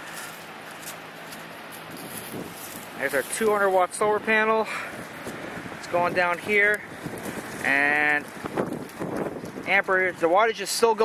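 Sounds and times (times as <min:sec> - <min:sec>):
blanket dragged over dry leaves: 0:00.0 - 0:04.2, 0:05.0 - 0:10.8.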